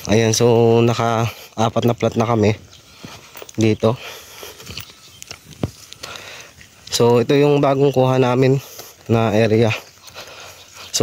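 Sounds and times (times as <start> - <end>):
footsteps crunching on dry grass: 0.0 - 11.0.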